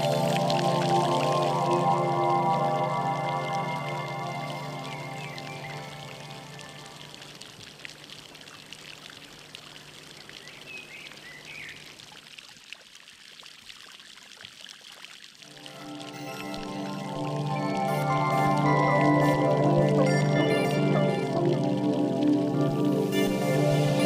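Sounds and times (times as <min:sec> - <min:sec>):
background music: 0:00.0 - 0:07.1, 0:15.5 - 0:24.0
trickling water: 0:00.0 - 0:24.0.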